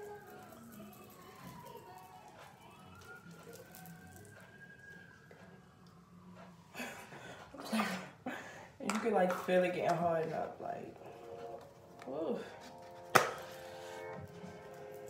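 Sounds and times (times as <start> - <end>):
faint siren wailing: 0.0 - 15.0.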